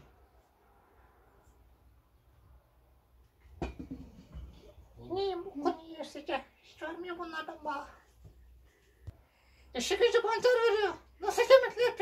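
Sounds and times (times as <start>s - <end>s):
wooden lid knocking on pot: 3.6s - 4.5s.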